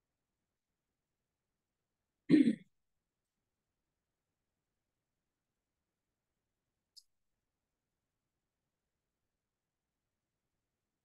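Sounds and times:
person clearing throat: 2.3 - 2.7.

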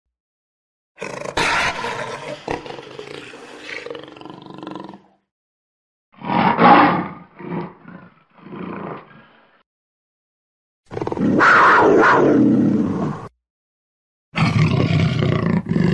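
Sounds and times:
jaguar growling: 1.0 - 5.2, 6.2 - 9.6, 14.4 - 15.9
jaguar grunting roars: 1.0 - 5.2, 6.2 - 9.6, 10.9 - 13.3, 14.4 - 15.9.

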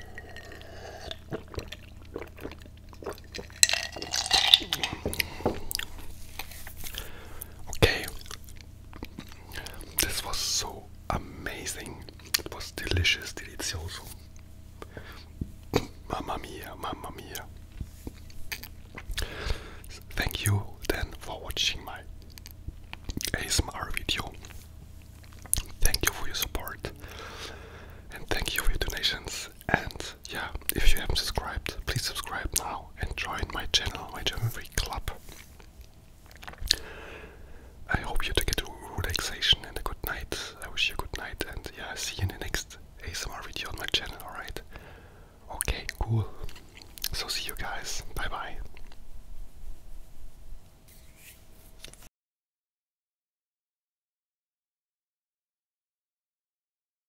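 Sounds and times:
wet mouth clicks: 0.0 - 6.5, 36.3 - 36.8, 45.6 - 47.8
man whispering: 7.6 - 8.4, 9.3 - 14.3, 15.2 - 17.5, 19.8 - 22.1, 23.2 - 24.6, 25.6 - 27.1, 28.1 - 35.3, 37.8 - 44.7, 45.4 - 48.8.

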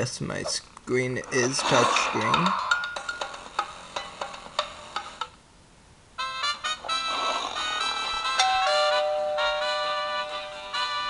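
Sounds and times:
phone ringtone: 7.9 - 11.0.

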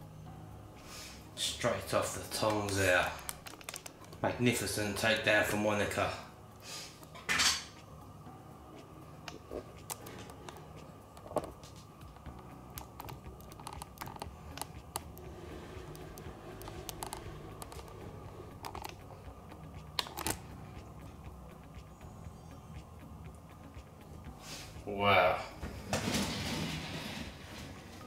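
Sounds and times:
faint steady hum: 0.0 - 25.8.

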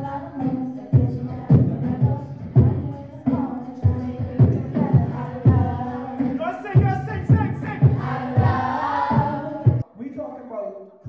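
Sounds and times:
backing track with heavy beat: 0.0 - 9.8
young voices singing together: 0.0 - 9.9.

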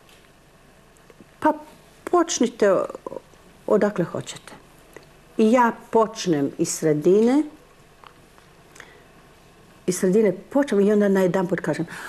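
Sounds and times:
woman speaking syllable: 1.4 - 4.6, 5.4 - 7.6, 9.9 - 11.9.

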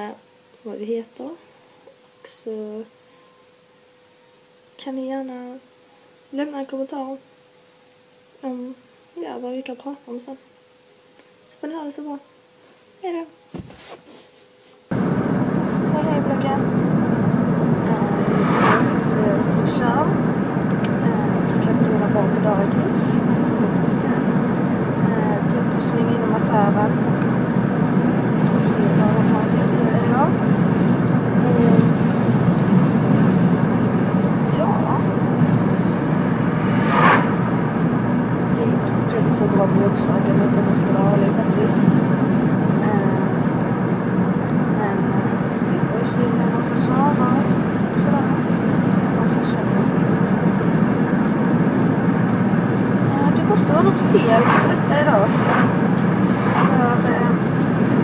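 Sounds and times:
brief knock: 13.5 - 13.9
road and engine noise in car: 14.9 - 58.0.

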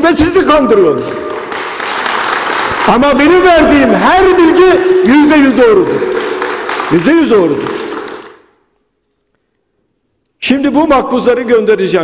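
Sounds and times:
man speaking: 2.8 - 6.2, 6.9 - 7.9, 10.4 - 12.0.

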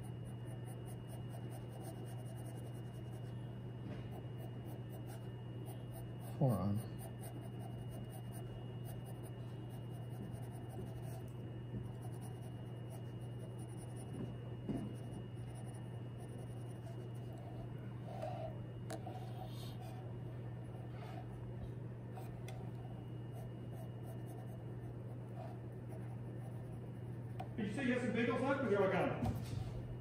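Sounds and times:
pencil scratching on paper: 0.0 - 3.4, 4.1 - 20.0, 22.2 - 26.9
steady low hum: 0.0 - 30.0.

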